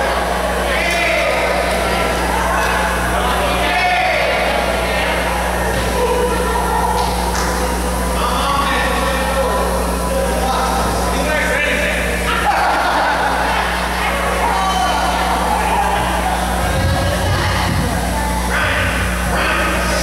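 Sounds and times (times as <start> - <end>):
crowd talking in echoing hall: 0.0 - 20.0
steady electrical hum: 0.0 - 20.0.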